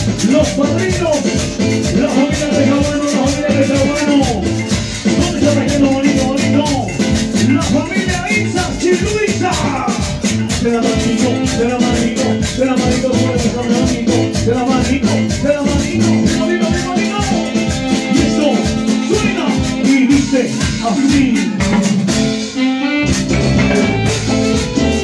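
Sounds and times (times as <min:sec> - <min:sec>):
live cumbia band: 0:00.0 - 0:25.0.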